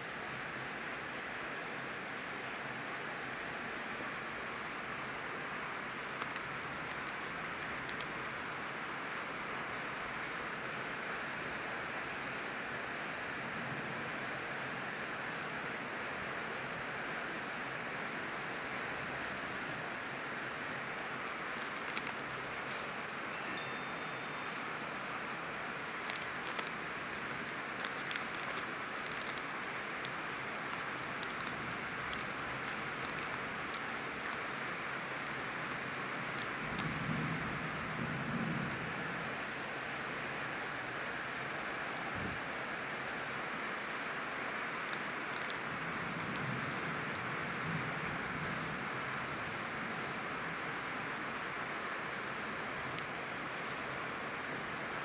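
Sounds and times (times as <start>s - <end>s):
steady background hiss: 0.0s - 55.0s.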